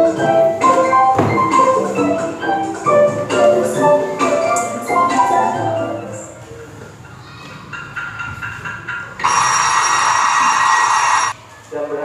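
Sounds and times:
cartoon alarm clock bell ringing: 9.2s - 11.4s.

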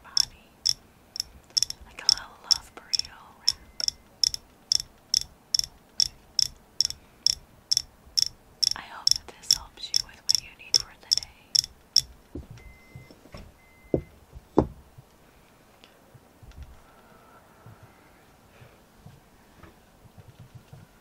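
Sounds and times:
faint ticks: 0.0s - 12.4s
fingernails tapping hard object: 0.2s - 12.5s
dull knocks: 12.3s - 14.8s.

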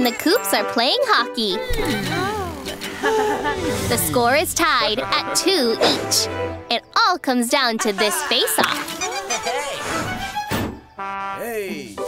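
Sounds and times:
bouncy cartoon music: 0.0s - 12.0s
thunk sound effect: 5.8s - 6.2s, 10.0s - 10.8s.

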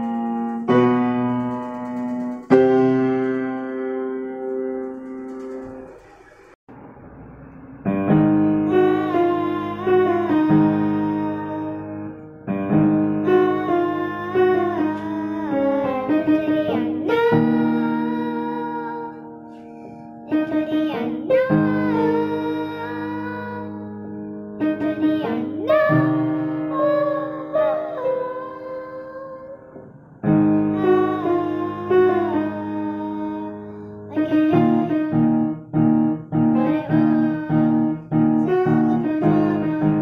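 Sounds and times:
piano playing slow chords: 6.7s - 40.0s.

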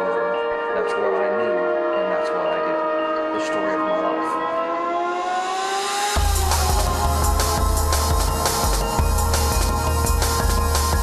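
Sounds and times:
synth tones gliding upward: 0.0s - 11.0s.

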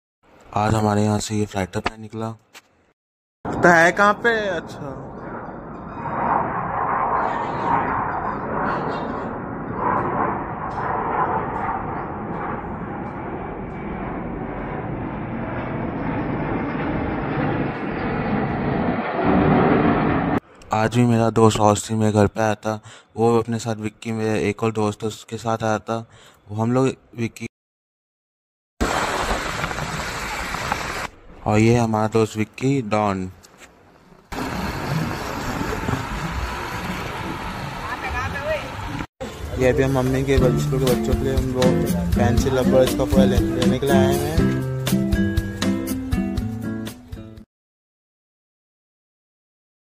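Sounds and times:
wind rush: 3.5s - 20.5s
fighter jet flying overhead: 3.5s - 20.6s, 34.3s - 40.4s
road noise: 32.3s - 40.8s.

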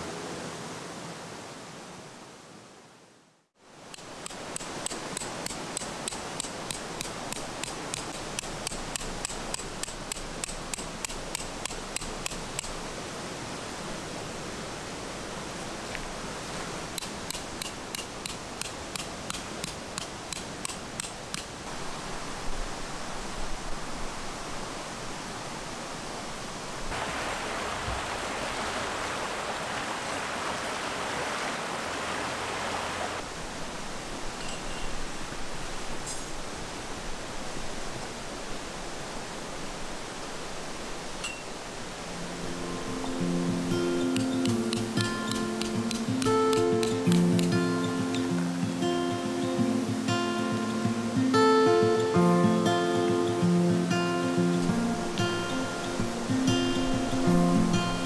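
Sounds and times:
mountain stream rushing: 0.0s - 58.0s
hammer striking tent peg: 4.2s - 12.7s, 17.0s - 21.5s, 44.2s - 47.6s.

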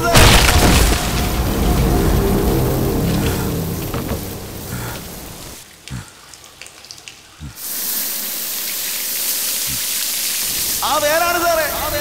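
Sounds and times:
deep thuds: 0.0s - 5.6s
fountain water spraying: 2.9s - 12.0s.

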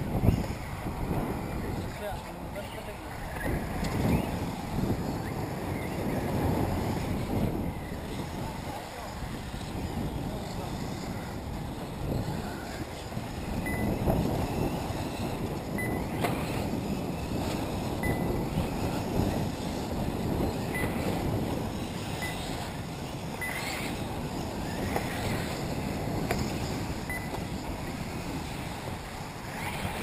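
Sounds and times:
wind buffeting microphone: 0.0s - 30.0s
short high beeps: 13.6s - 13.9s, 15.8s - 16.1s, 18.0s - 18.3s, 23.4s - 23.7s, 27.1s - 27.4s.

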